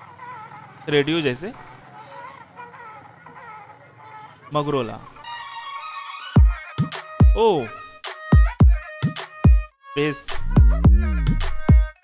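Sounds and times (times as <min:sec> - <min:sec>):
deep bass kicks dropping in pitch: 0:10.5 - 0:11.4.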